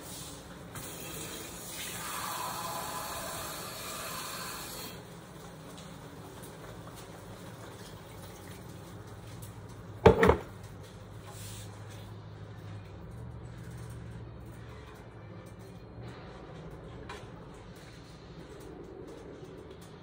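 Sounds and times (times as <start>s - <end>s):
water running from tap: 0.0s - 5.1s.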